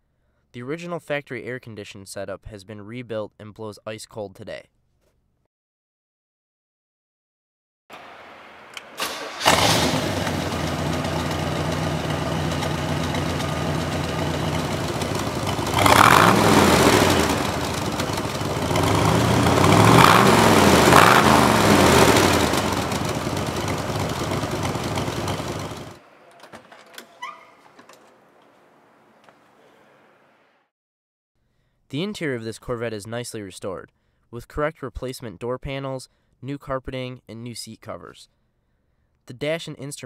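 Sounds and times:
car engine starting and idling: 7.9 - 27.0
engine revving: 8.0 - 26.0.

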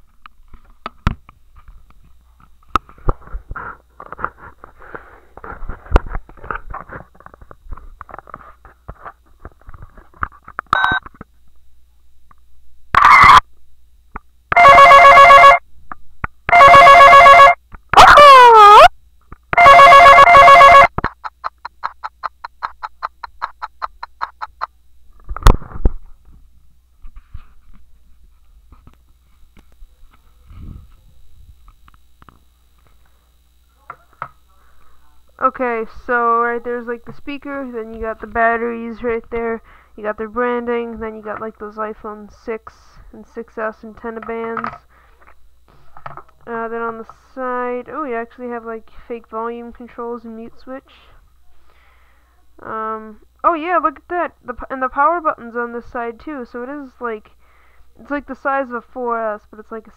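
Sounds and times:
toy phone ring-like tones: 14.5 - 15.6, 16.5 - 17.6, 19.6 - 20.9.

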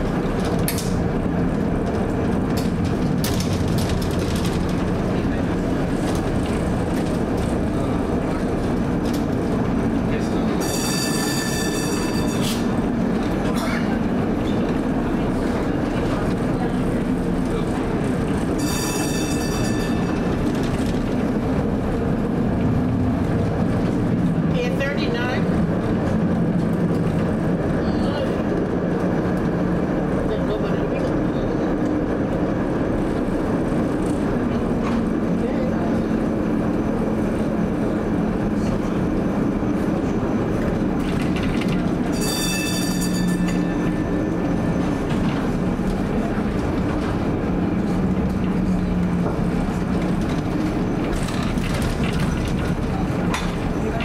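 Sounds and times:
streetcar rumbling on rails: 0.0 - 54.0
high ringing tones: 10.6 - 12.6, 18.6 - 20.4, 42.1 - 44.1.

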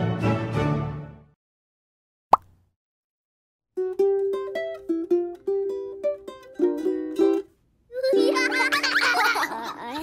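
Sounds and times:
cartoon bubble pop: 2.3 - 2.6
plucked ukulele music: 3.8 - 9.4.

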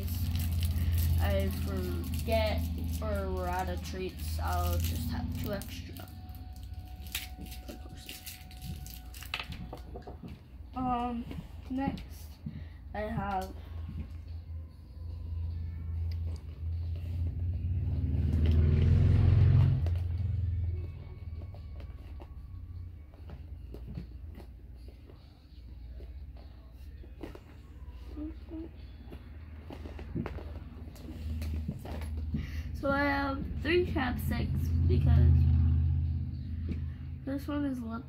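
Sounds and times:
low rumbling hum: 0.0 - 38.0
small items clicking in a pouch: 4.2 - 9.9.

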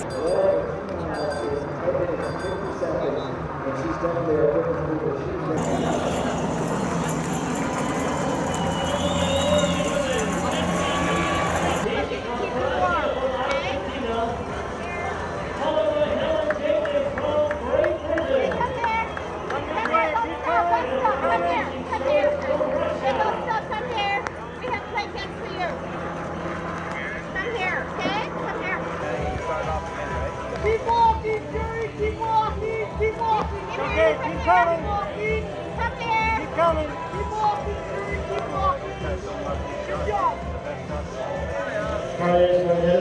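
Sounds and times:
outdoor background noise: 0.0 - 43.0
steady noisy background: 0.0 - 43.0
distant voices: 5.6 - 33.8.

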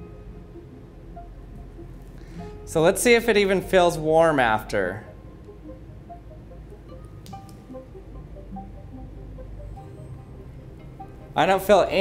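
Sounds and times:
plucked notes music: 0.0 - 12.0.

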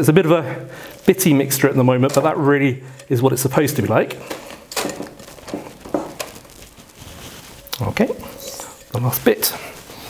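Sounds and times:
spoon scraping steel bowl: 0.9 - 6.3, 7.6 - 9.5.

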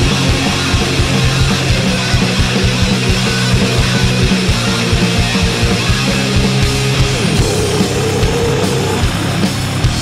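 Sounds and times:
distorted guitars and bass: 0.0 - 10.0.

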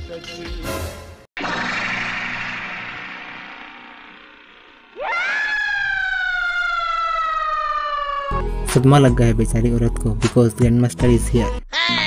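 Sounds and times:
noisy wash: 1.4 - 5.1
woman screaming: 5.0 - 8.3, 11.7 - 12.0.

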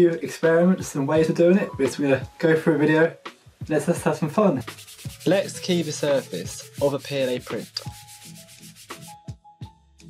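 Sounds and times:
sandpaper rubbing on plastic: 4.6 - 9.2.

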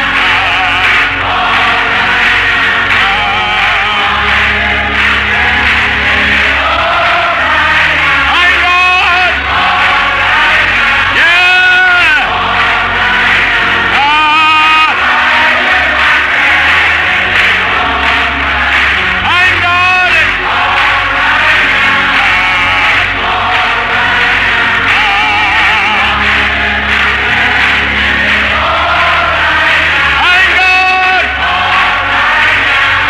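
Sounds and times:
choir singing gospel: 0.0 - 33.0
sustained low accompaniment: 0.0 - 33.0
vibrato voices: 0.0 - 33.0.

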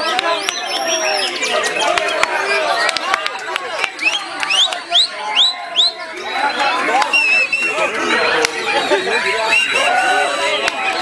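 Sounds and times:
bird singing whistles: 0.0 - 1.9, 3.9 - 7.9, 8.6 - 9.8
crowd chatter: 0.0 - 11.0.

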